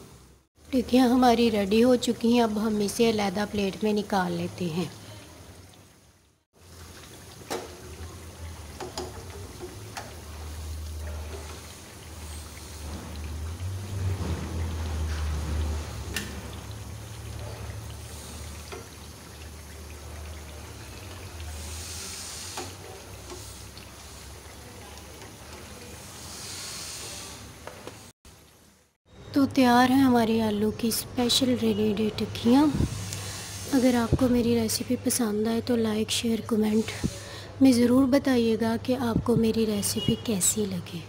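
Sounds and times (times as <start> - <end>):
food deep-frying in oil: 0.0 - 41.0.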